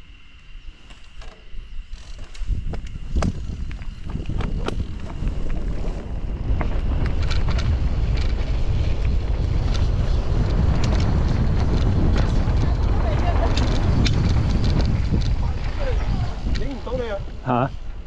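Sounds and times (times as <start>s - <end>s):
bike frame and tyres rattling: 0.2s - 18.0s
wind on microphone: 1.6s - 18.0s.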